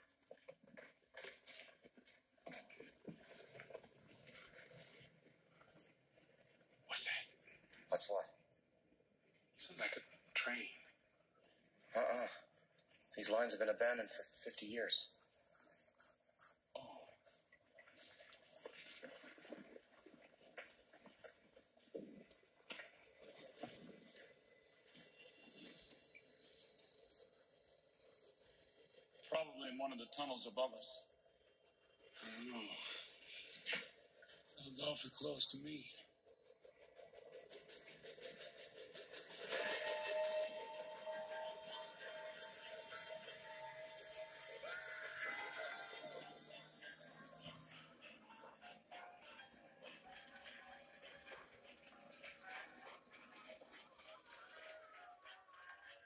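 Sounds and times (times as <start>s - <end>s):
faint film soundtrack: 0.0s - 56.0s.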